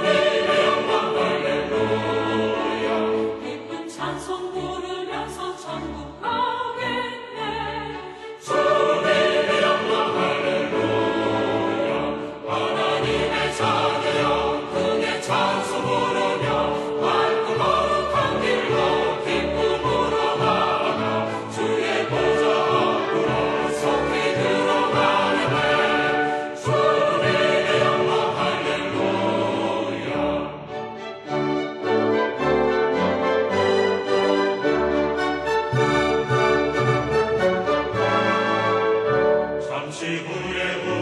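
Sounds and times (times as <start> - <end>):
choir singing with accompaniment: 0.0 - 41.0.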